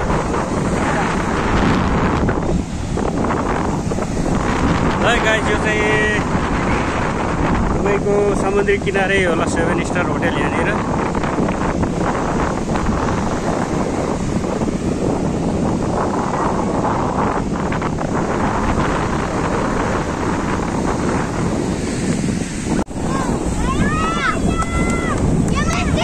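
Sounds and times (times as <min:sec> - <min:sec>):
surf breaking on sand: 0:00.0 - 0:26.0
wind buffeting microphone: 0:00.0 - 0:26.0
voices calling out: 0:23.0 - 0:26.0.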